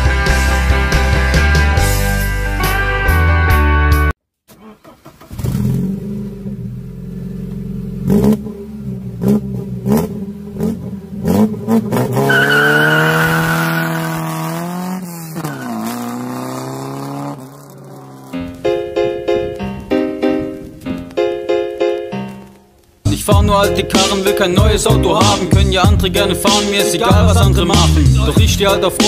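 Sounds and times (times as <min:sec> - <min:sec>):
car engine starting and revving: 0:04.5 - 0:19.9.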